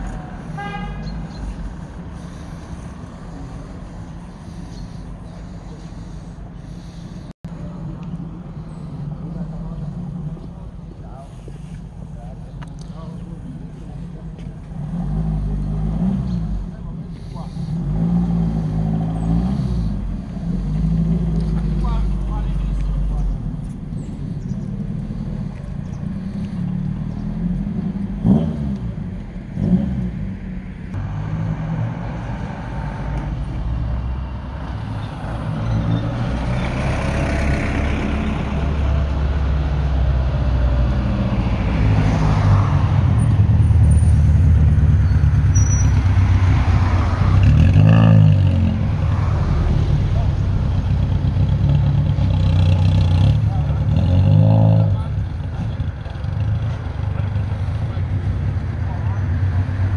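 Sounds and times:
rally car engines revving: 34.8s - 59.9s.

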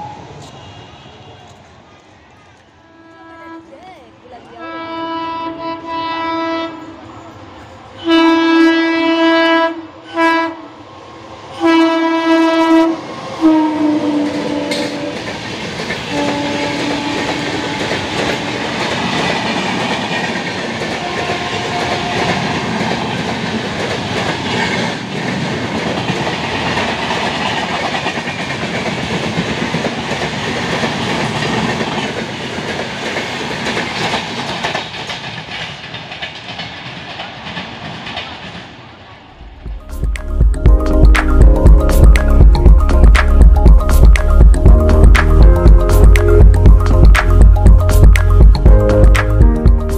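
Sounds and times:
train coaches rumbling and clacking: 0.0s - 49.9s
train horn blasts: 4.6s - 7.1s, 8.0s - 10.7s, 11.6s - 15.3s, 16.0s - 18.9s, 21.0s - 22.8s.

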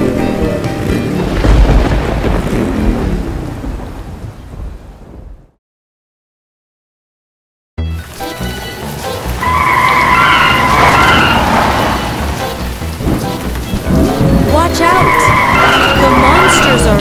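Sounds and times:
background music: 0.0s - 2.6s, 7.8s - 17.0s
rain: 0.0s - 5.6s, 7.9s - 17.0s
tyres squealing: 8.4s - 17.0s.

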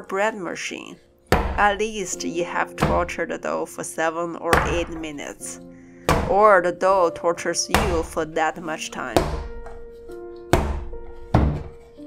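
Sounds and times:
dough thudding on wooden board: 1.3s - 1.9s, 4.5s - 5.2s, 6.1s - 6.4s, 7.7s - 8.3s, 9.2s - 11.8s.

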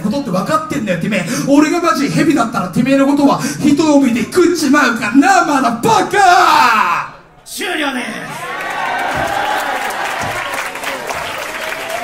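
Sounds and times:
audience clapping and cheering: 8.4s - 12.0s.

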